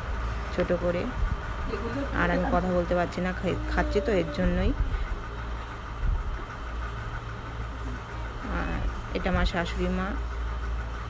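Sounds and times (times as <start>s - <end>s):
motor humming: 0.0s - 11.0s.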